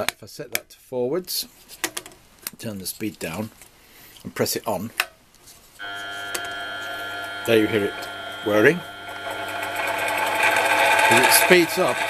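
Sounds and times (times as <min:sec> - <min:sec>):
milling machine motor whining: 0:05.8 - 0:12.0.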